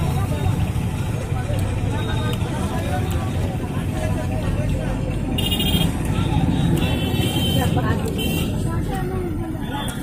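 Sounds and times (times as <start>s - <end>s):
bus engine and road rumble: 0.0s - 10.0s
people's voices: 0.0s - 10.0s.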